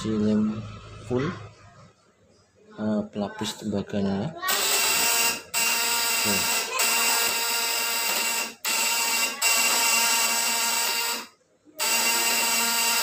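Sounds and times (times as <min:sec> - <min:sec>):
high-voltage inverter buzzing: 0:04.4 - 0:13.0.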